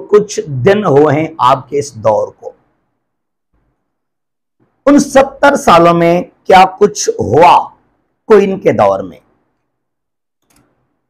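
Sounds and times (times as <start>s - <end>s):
man speaking: 0.0s - 2.6s, 4.9s - 9.2s.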